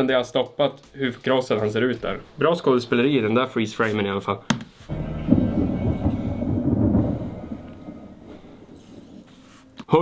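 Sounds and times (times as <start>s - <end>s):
rolling rumble of thunder: 4.9s - 9.3s.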